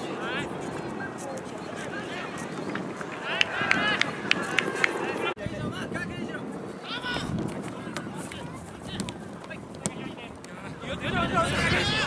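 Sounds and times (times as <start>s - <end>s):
players shouting: 0.0s - 5.4s.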